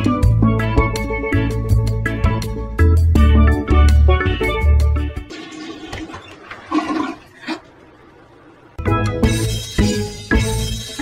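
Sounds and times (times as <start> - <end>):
toilet flushing: 5.2 - 8.8.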